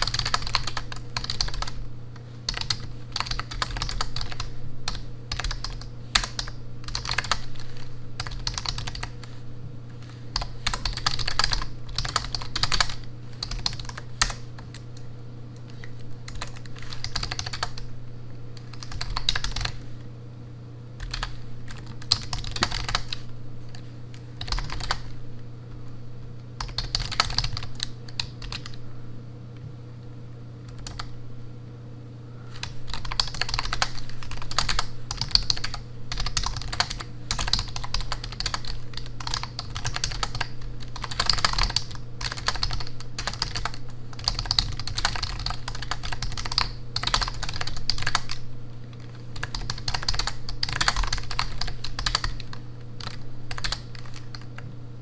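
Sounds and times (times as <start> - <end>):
typing on computer keyboard: 0.0 - 9.2, 10.4 - 15.0, 15.6 - 17.9, 18.6 - 19.8, 21.0 - 23.8, 24.4 - 25.1, 26.6 - 28.8, 30.7 - 31.1, 32.6 - 48.4, 49.0 - 54.7.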